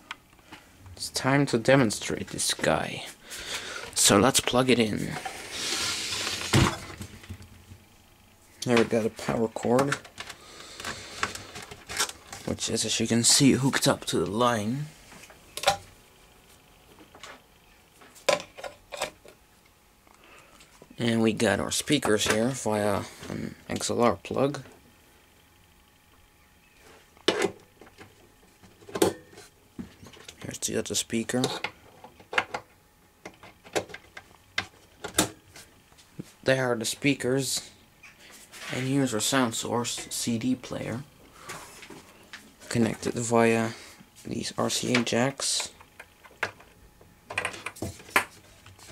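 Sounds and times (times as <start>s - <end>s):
rustling and scraping: 4.8s - 7.5s, 10.0s - 12.6s, 38.2s - 39.1s, 41.4s - 42.9s.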